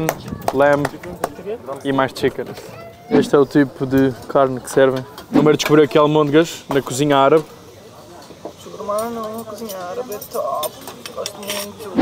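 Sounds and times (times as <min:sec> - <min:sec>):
soft voices talking: 0:00.0 - 0:12.0
metal spoon clinking on pot: 0:08.9 - 0:12.0.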